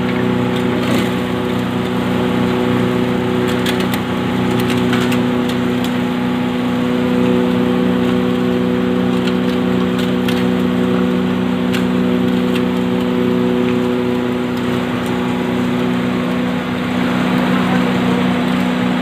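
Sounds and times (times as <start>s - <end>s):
motor hum: 0.0s - 19.0s.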